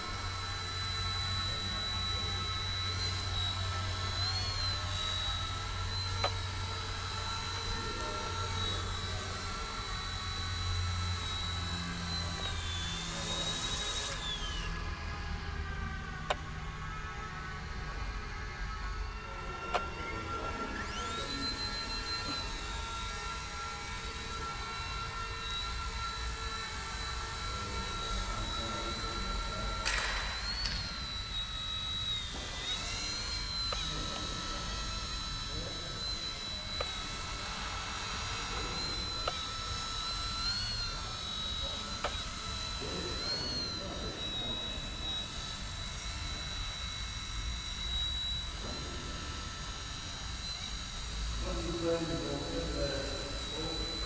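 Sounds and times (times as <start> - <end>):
toy helicopter motor whine: 0.0 - 54.0.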